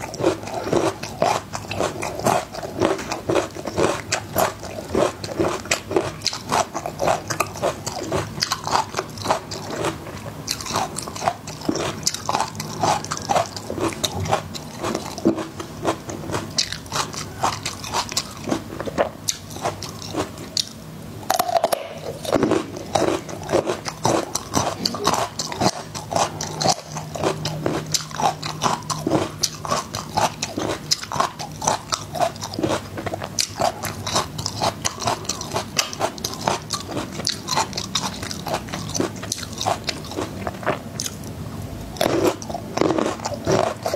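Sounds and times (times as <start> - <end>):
crunching and chewing garlic: 0.0 - 43.9.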